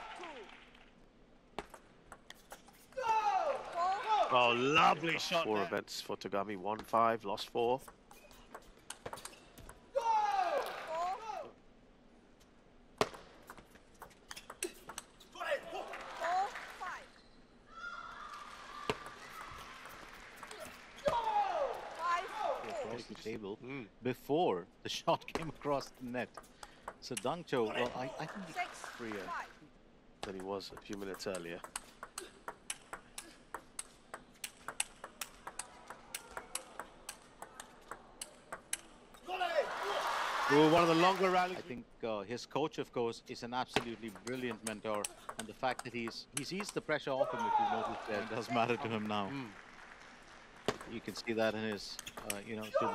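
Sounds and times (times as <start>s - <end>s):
ping pong ball clicks: 30.8s - 39.2s, 44.1s - 46.8s.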